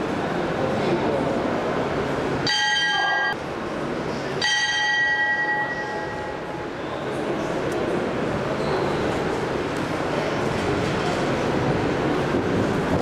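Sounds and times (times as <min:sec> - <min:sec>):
hall noise and voices: 0:00.0 - 0:13.0
boxing ring bell: 0:02.5 - 0:03.4, 0:04.4 - 0:06.5.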